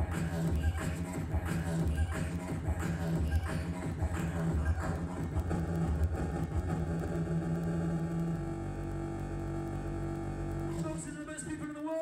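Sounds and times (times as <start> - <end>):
beatboxed low rumbling drone: 0.0 - 11.5.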